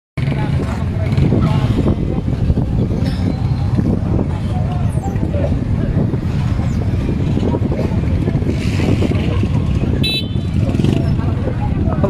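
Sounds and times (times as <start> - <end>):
many motorcycle engines running: 0.2 - 12.0
voices: 0.2 - 12.0.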